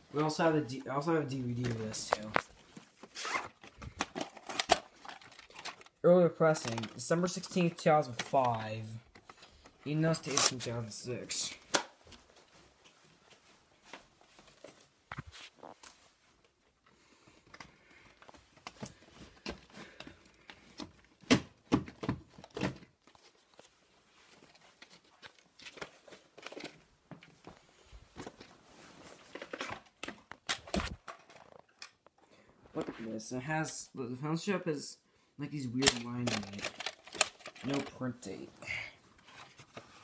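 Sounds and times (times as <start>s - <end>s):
plastic cases clicking and knocking: 3.6s - 5.9s, 35.9s - 38.0s
quiet rustling: 6.5s - 20.6s.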